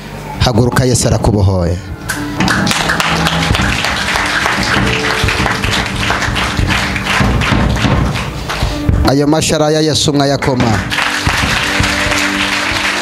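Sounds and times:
electronic keyboard chords: 0:01.9 - 0:13.0
fast percussive beat: 0:02.2 - 0:09.6, 0:10.5 - 0:13.0.

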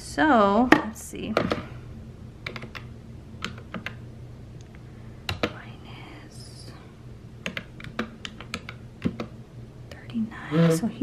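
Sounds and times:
calculator buttons clicking: 0:02.4 - 0:04.0, 0:07.4 - 0:09.3.

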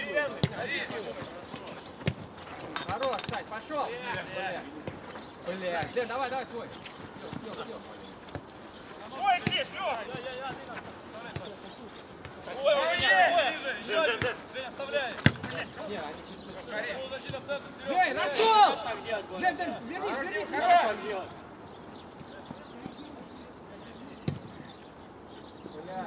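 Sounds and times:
players shouting: 0:00.0 - 0:01.7, 0:08.9 - 0:21.4
ball being kicked: 0:15.2 - 0:15.6.

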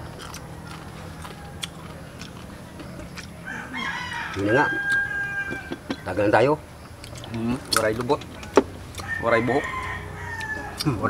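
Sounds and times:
rooster crowing: 0:00.2 - 0:06.2, 0:08.9 - 0:11.0.

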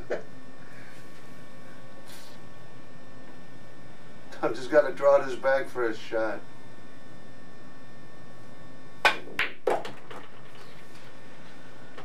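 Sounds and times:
cue striking ball: 0:09.0 - 0:10.4
pool balls clicking: 0:09.0 - 0:10.8.

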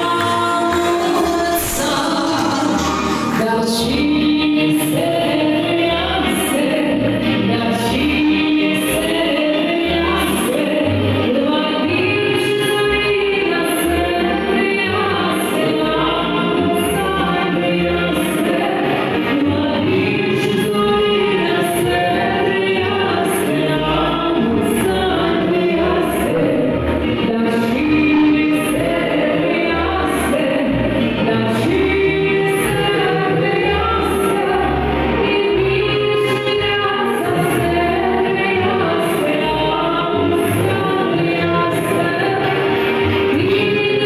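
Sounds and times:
backing track with bass line: 0:00.0 - 0:05.2
woman singing into microphone: 0:00.0 - 0:44.0.

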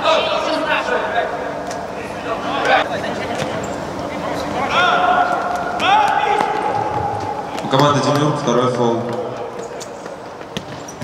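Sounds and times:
players shouting: 0:03.8 - 0:09.7
sneakers squeaking on floor: 0:09.5 - 0:11.0
ball kicked and bouncing: 0:10.4 - 0:11.0.

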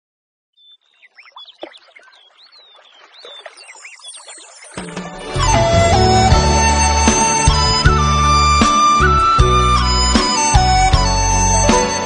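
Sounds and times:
birds chirping: 0:00.6 - 0:12.0.

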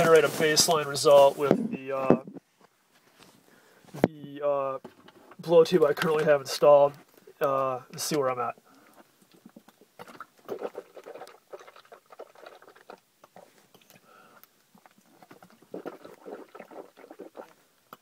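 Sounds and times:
water sloshing in mouth: 0:08.8 - 0:14.1, 0:14.8 - 0:18.0.

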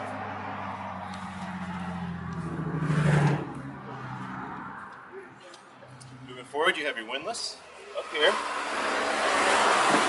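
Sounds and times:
vehicle engine hum passing by: 0:00.0 - 0:06.6.

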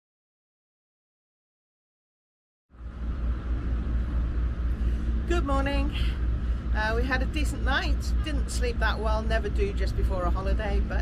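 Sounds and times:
low outdoor rumble: 0:02.7 - 0:11.0.

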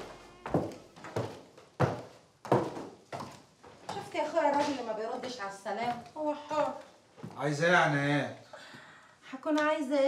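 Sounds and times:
footsteps down stairs: 0:00.0 - 0:07.9.

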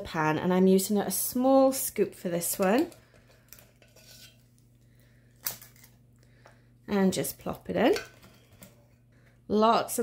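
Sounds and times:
scoop scraping glass bowl: 0:03.8 - 0:04.5.

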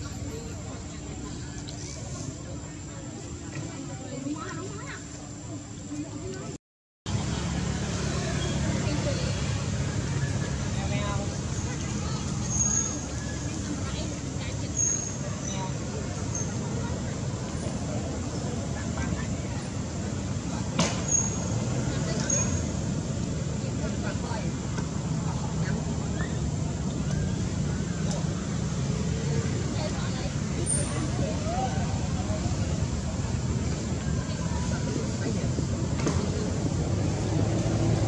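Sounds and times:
faint distant voices: 0:00.0 - 0:38.0.

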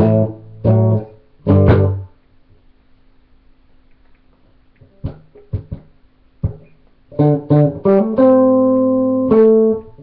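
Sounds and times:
electric guitar chord: 0:00.0 - 0:02.1, 0:06.4 - 0:10.0.

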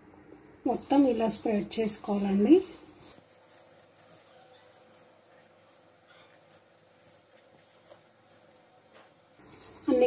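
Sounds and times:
paper cup rustling: 0:00.7 - 0:08.6, 0:09.4 - 0:10.0.

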